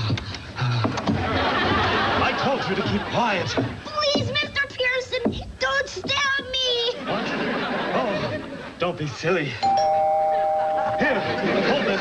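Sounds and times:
studio audience laughter: 1.1s - 3.6s, 7.0s - 8.8s, 10.3s - 12.0s.

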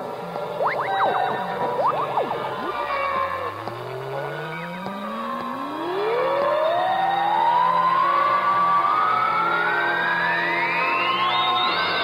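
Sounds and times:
synthesized droning tones: 0.0s - 11.2s
electronic tone sliding upward: 0.5s - 7.4s.

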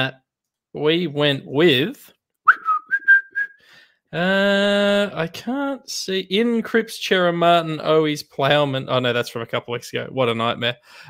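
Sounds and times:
person whistling: 2.4s - 3.7s.

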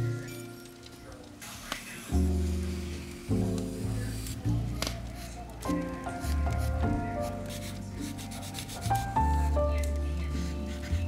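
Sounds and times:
background music with held notes: 0.0s - 11.0s
charcoal scratching on paper: 6.1s - 11.0s.

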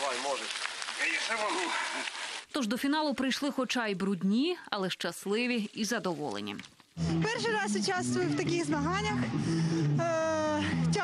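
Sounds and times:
mountain bike riding past on mud: 0.0s - 2.5s.

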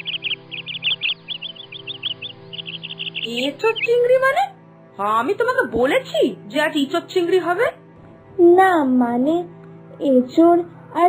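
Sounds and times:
high bird chirps: 0.0s - 4.4s
background music: 0.0s - 11.0s.

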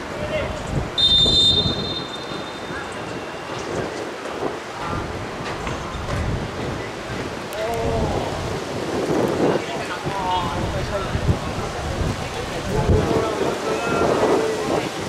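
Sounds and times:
rumbling outdoor noise: 0.0s - 15.0s
referee's whistle blast: 1.0s - 3.4s.

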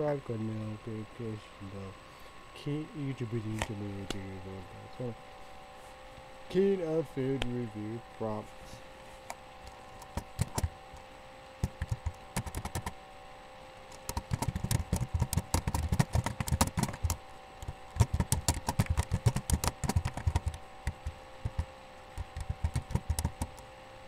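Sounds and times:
faint electrical hum: 0.0s - 24.0s
typing on computer keyboard: 10.0s - 10.7s, 11.6s - 12.9s, 13.9s - 17.2s, 18.0s - 23.6s.

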